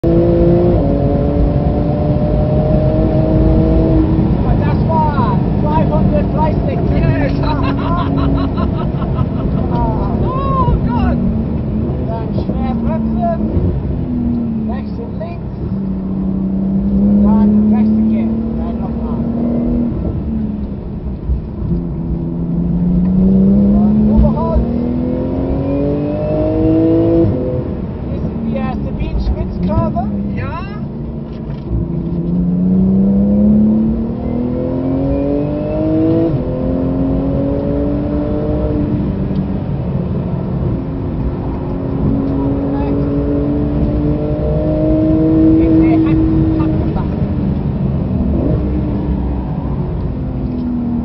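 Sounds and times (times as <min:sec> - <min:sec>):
car engine braking and accelerating: 0:00.0 - 0:51.0
road and tyre roar: 0:00.0 - 0:51.0.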